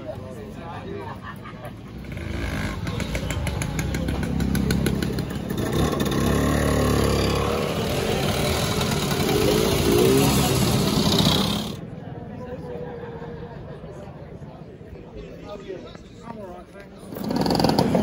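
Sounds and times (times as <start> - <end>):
scooters riding past: 1.7 - 11.8, 17.1 - 18.0.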